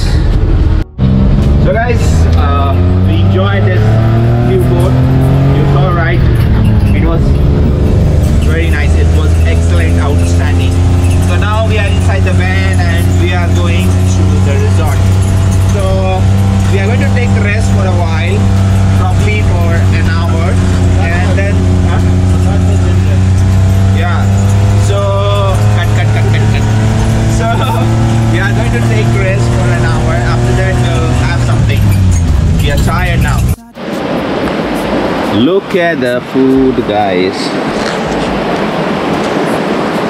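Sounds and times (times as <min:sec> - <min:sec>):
van engine droning: 0:00.0 - 0:40.0.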